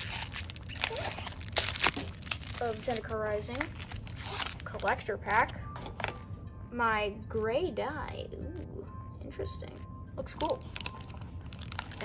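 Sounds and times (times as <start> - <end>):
foil wrappers crinkling: 0.0 - 5.4, 10.4 - 12.0
sharp foil crackles: 0.0 - 5.4, 10.4 - 12.0.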